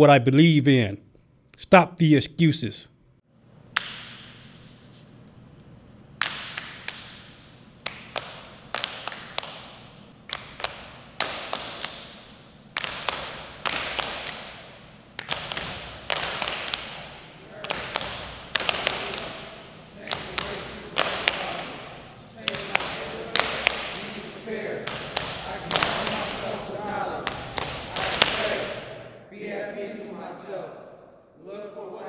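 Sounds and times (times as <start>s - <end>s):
hands slapping a concrete wall: 3.8s - 4.8s, 6.2s - 12.2s, 12.8s - 14.6s, 15.2s - 26.4s.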